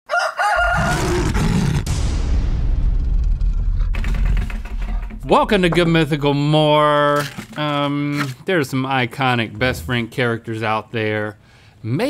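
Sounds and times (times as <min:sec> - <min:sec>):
crowing call: 0:00.1 - 0:01.3
deep rumble: 0:00.8 - 0:06.7.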